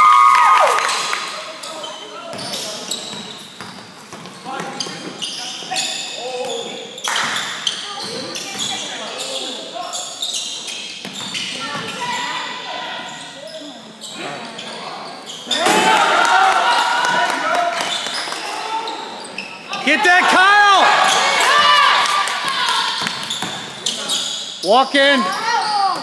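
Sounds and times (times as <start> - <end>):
voices echoing in a hall: 0.6 - 26.0.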